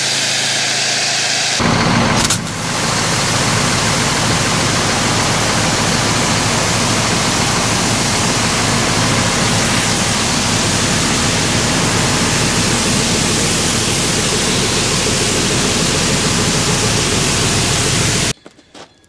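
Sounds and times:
pressure washer spraying metal: 0.0s - 18.4s
machine low hum: 1.6s - 18.3s.

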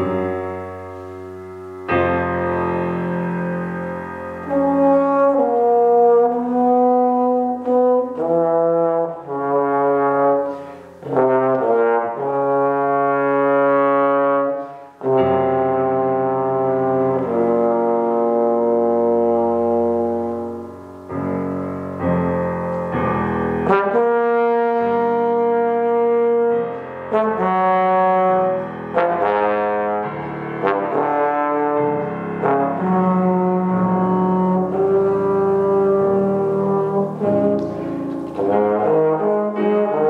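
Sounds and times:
piano accompaniment: 0.0s - 40.0s
trombone holding long note: 2.0s - 22.0s, 23.3s - 40.0s.

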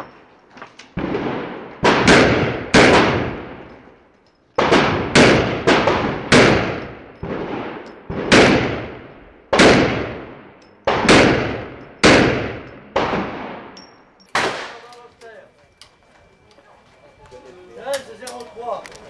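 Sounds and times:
pistol shots echoing: 1.0s - 4.0s, 4.6s - 16.4s.

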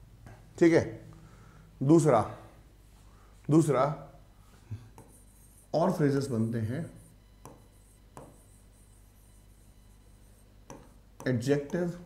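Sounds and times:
man speaking: 1.8s - 2.5s, 3.4s - 4.2s, 5.7s - 7.1s, 11.2s - 12.0s
marker scratching on whiteboard: 5.0s - 12.0s.

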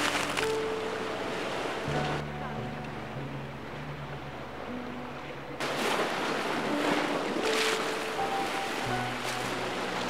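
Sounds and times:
sea waves washing onto shore: 0.0s - 2.2s, 5.6s - 10.0s.

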